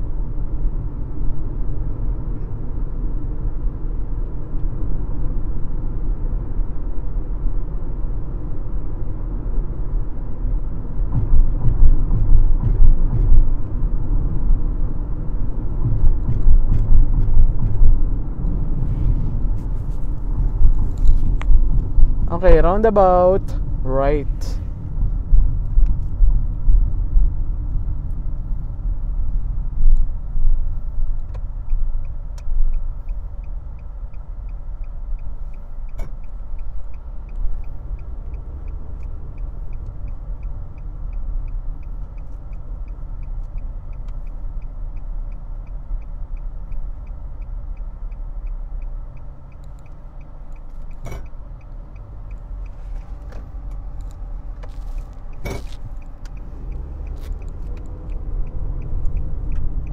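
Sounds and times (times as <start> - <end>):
car road and engine rumble: 0.0 - 59.9
turn signal ticking: 0.2 - 59.9.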